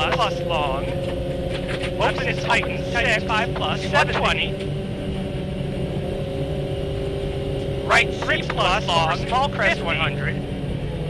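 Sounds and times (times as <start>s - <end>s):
tyres rumbling on gravel: 0.0s - 4.6s
car engine from inside cabin: 0.0s - 11.0s.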